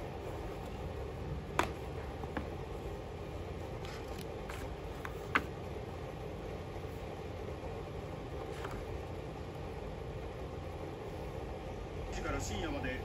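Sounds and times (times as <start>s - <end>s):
low background hum: 0.0s - 13.0s
paper pages flipping: 3.8s - 5.5s, 8.5s - 8.9s.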